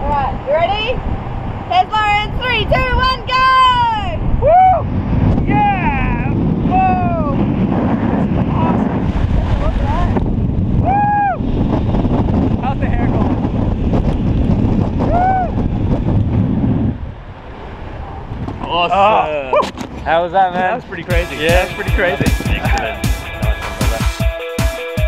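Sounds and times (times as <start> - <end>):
heavy wind noise on microphone: 0.0 - 24.1
man whooping yells: 3.4 - 4.9, 5.5 - 7.4, 10.8 - 11.4, 15.1 - 15.6.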